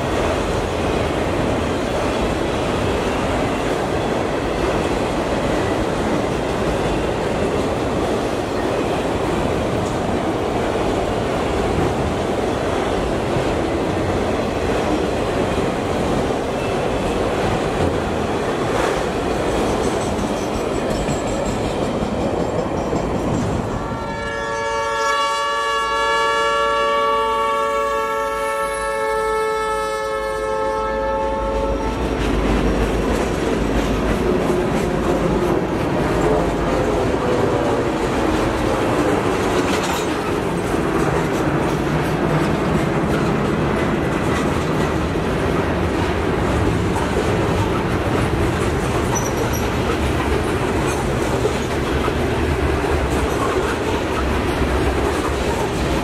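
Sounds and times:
wheels clattering on rails: 0.0s - 24.0s, 31.6s - 56.0s
locomotive air horn: 23.8s - 32.2s, 36.2s - 38.0s.

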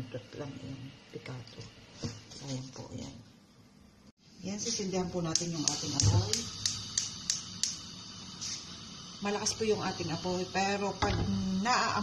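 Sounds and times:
gas burner hiss: 4.3s - 12.0s
stove spark igniter clicking: 5.2s - 7.9s.

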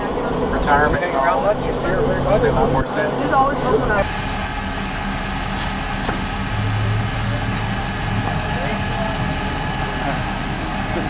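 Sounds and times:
engine humming: 0.0s - 11.0s.

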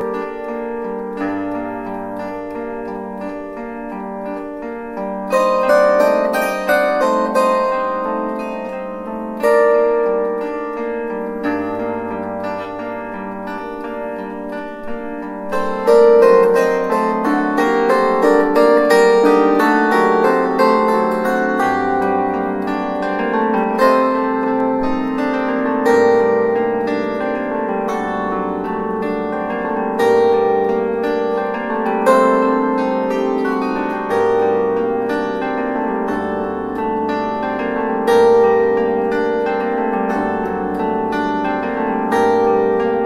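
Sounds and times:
plucked bandura playing: 0.0s - 43.0s.

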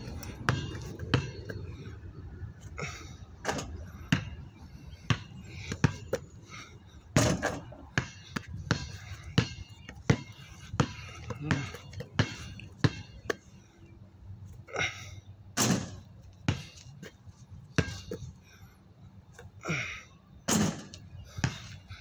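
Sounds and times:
basketball bouncing on concrete: 0.1s - 1.6s, 3.5s - 4.4s, 5.1s - 6.3s, 7.2s - 13.4s, 15.6s - 17.0s, 17.8s - 18.2s, 20.5s - 21.8s.

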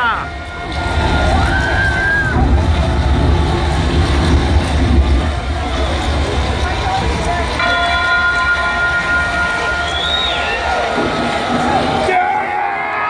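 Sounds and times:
crowd shouting: 0.0s - 4.1s, 7.6s - 13.0s
deep rumble over pa: 0.2s - 12.1s
held tone with overtones: 7.6s - 12.0s.

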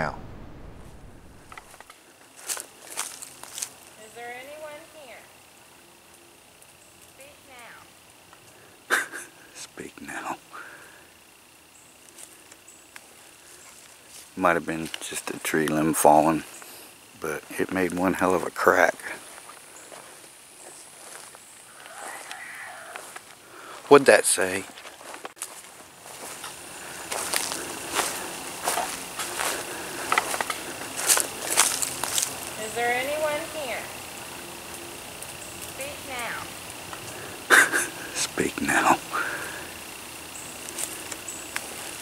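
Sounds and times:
high insect hiss: 0.0s - 42.0s.

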